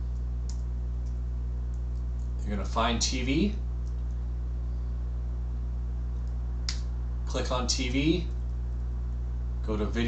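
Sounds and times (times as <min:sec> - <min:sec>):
low electrical hum: 0:00.0 - 0:10.0
sharp click: 0:06.2 - 0:06.9.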